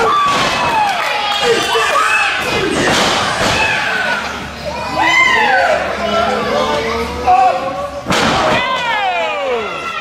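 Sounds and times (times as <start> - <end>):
voices crying out: 0.0 - 10.0.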